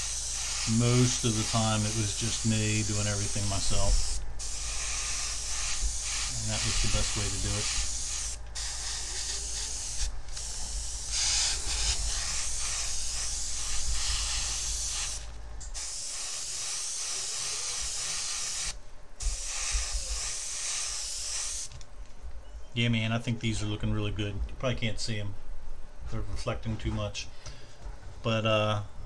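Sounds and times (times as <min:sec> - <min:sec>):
airbrush hissing: 0:00.0 - 0:21.7.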